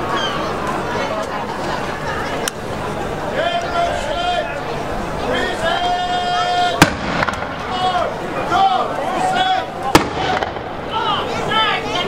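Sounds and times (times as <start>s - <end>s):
musket gunshot: 6.8s - 7.6s, 10.0s - 10.8s.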